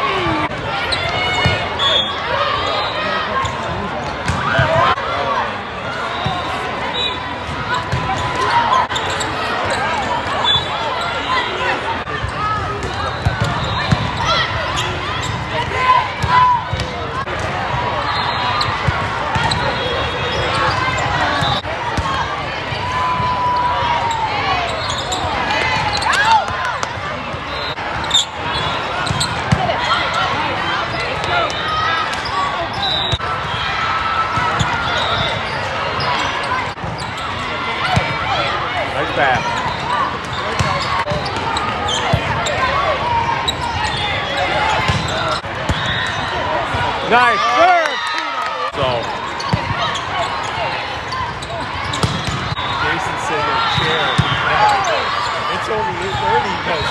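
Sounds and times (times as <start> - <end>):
volleyballs thudding: 51.9 - 52.6.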